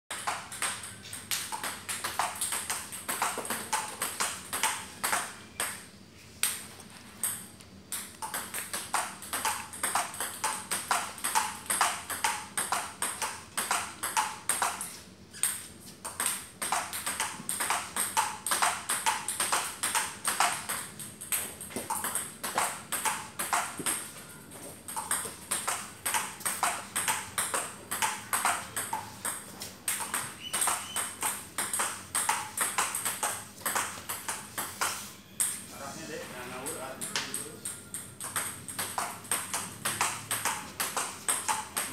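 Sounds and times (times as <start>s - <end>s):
table tennis ball clicking: 0.1s - 5.8s, 7.2s - 24.1s, 24.9s - 35.6s, 37.0s - 41.9s.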